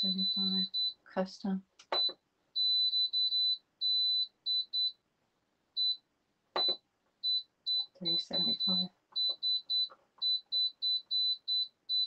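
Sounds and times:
control panel beeping: 6.6s - 12.0s.

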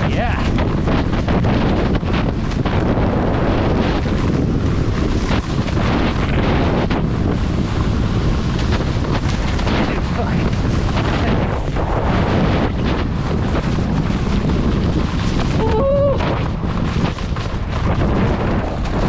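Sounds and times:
skis scraping over snow: 0.0s - 19.0s
wind buffeting microphone: 0.0s - 19.0s.

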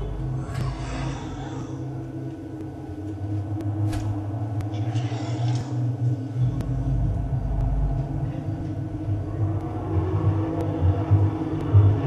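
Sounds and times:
low rumbling film drone: 0.0s - 12.0s.

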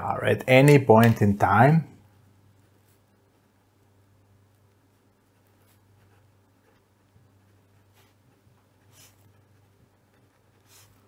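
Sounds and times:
low steady hum: 0.0s - 11.0s
pen scratching on paper: 5.2s - 11.0s.

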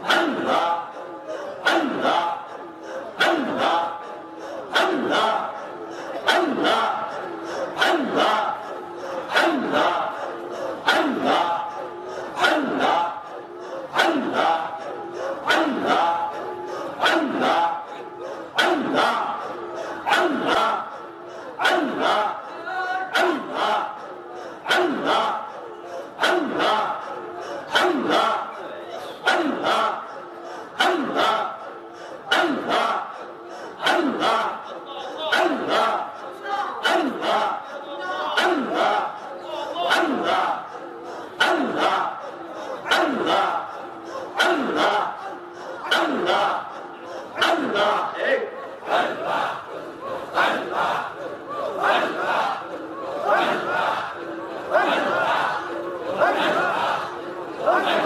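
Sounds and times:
group of men chanting: 0.0s - 58.0s.

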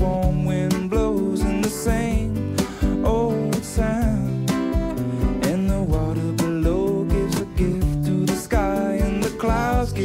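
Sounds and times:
acoustic guitar strumming: 0.0s - 10.0s
drum kit: 0.0s - 10.0s
man singing: 0.0s - 10.0s.

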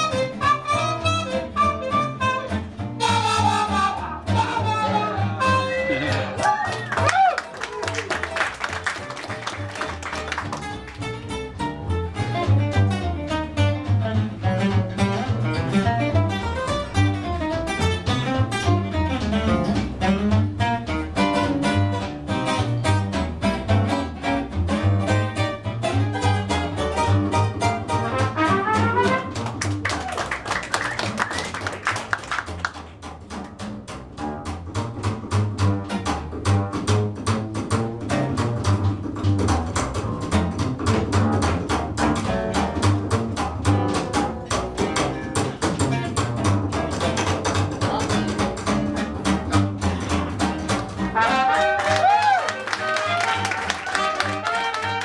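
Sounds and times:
upright bass walking line: 0.0s - 51.8s
jazz guitar: 0.0s - 55.0s.

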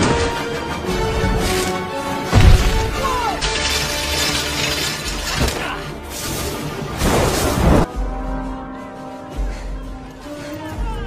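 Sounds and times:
film music: 0.0s - 11.0s
shattering crash: 1.3s - 7.9s.

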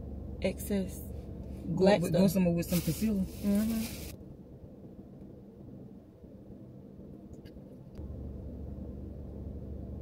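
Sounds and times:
low hum inside car cabin: 0.0s - 10.0s.

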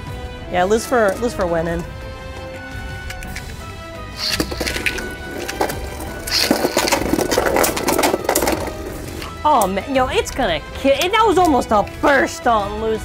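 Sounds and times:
background music: 0.0s - 13.0s
spinning tops clashing: 4.2s - 9.4s.

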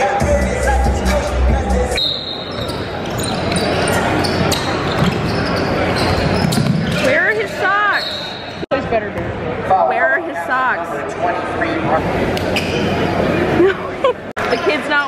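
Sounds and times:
crowd noise in gym: 0.0s - 15.0s
sneakers squeaking on floor: 2.0s - 8.7s.

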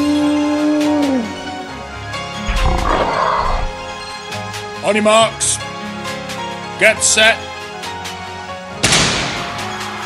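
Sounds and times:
background music: 0.0s - 10.0s
animal roar sound effect: 2.5s - 3.9s.

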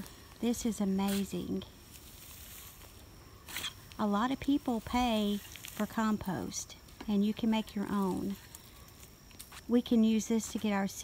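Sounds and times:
shovel scraping compost: 0.0s - 4.0s.

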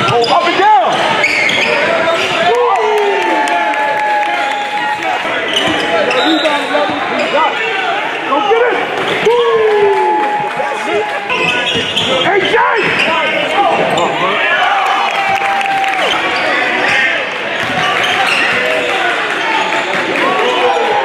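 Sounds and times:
sneakers squeaking: 0.0s - 2.4s, 5.3s - 7.6s, 11.3s - 14.4s, 16.0s - 20.9s
voices in a large hall: 0.0s - 21.0s.

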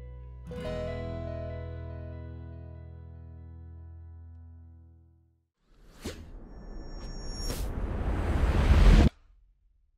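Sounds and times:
rising noise swell: 6.4s - 9.1s.

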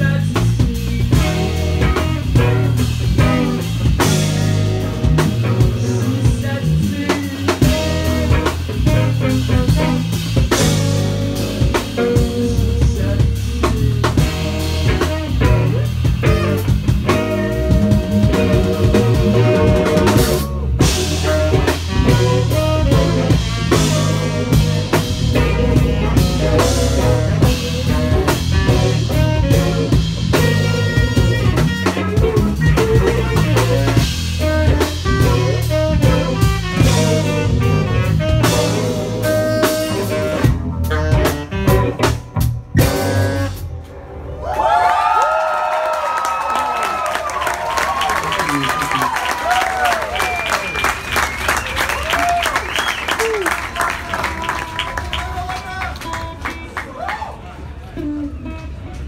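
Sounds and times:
electric guitar: 0.0s - 44.4s, 57.8s - 59.0s
drum kit: 0.0s - 45.1s, 46.0s - 55.2s
bass guitar: 0.0s - 59.0s
audience cheering and clapping: 44.2s - 57.9s.

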